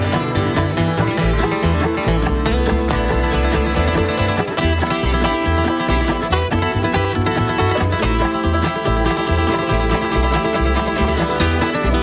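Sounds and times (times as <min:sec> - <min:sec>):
string band playing: 0:00.0 - 0:12.0
upright bass notes: 0:00.0 - 0:12.0.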